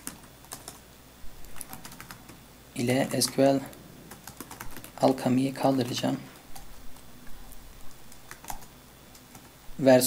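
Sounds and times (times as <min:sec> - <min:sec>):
computer keyboard keystrokes: 0:00.0 - 0:00.8, 0:01.5 - 0:02.3, 0:04.1 - 0:05.1, 0:08.1 - 0:09.5.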